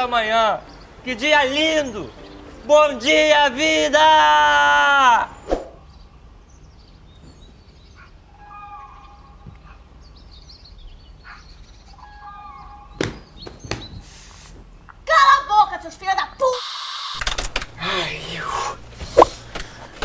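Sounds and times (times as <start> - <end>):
faint birdsong: 0.0 - 4.0, 4.9 - 15.0.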